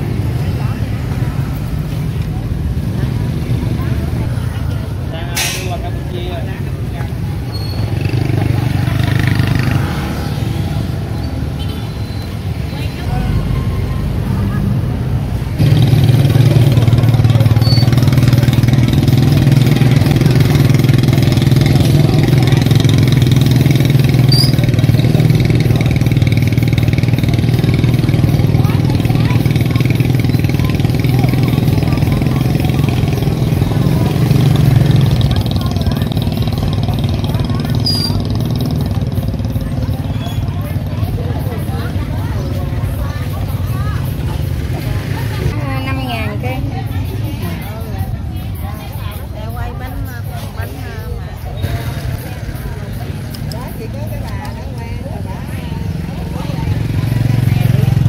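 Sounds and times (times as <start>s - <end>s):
people's voices: 0.0s - 58.0s
motorbike engine running: 6.3s - 11.7s, 15.2s - 58.0s.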